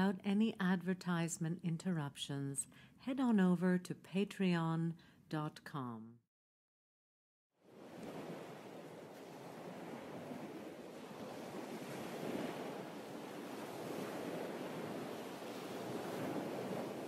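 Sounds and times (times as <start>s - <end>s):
small waves washing on shore: 7.6s - 17.0s.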